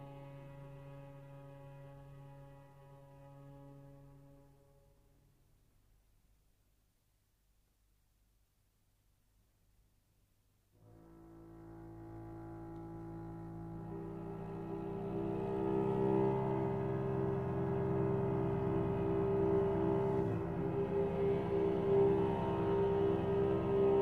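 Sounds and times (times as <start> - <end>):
cello and double bass notes: 0.0 - 4.9, 10.8 - 24.0.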